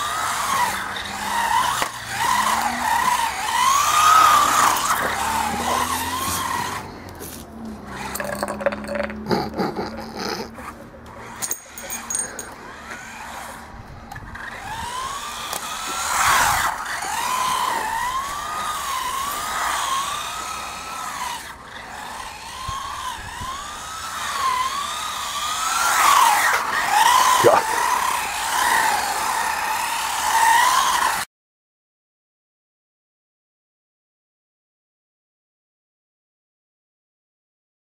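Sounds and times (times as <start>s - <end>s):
toy car electric motor whining: 0.0s - 31.3s.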